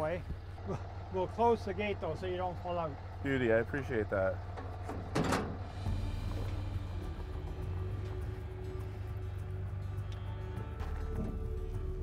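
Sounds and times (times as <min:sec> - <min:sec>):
metal truck gate clanking shut: 0:04.5 - 0:05.9
low rumble: 0:05.1 - 0:12.0
background music: 0:05.7 - 0:12.0.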